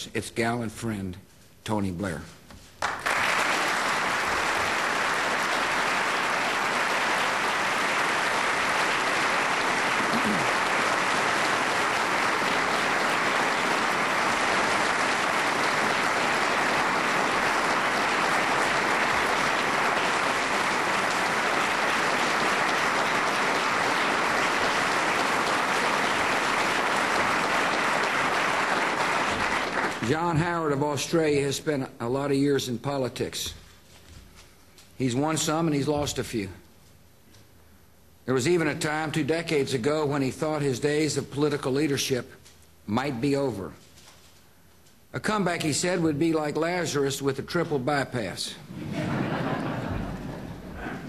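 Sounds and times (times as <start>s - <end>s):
audience applauding: 2.8s - 30.4s, 48.8s - 51.0s.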